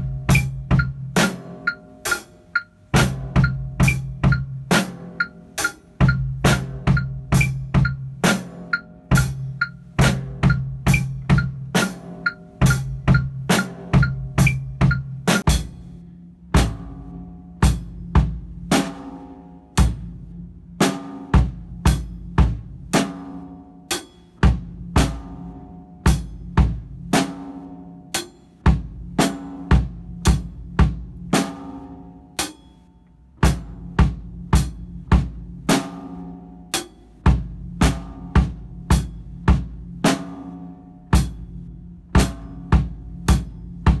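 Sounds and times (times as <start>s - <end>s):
snare and bass drum strikes: 0.0s - 20.2s, 20.8s - 32.7s, 33.4s - 44.0s.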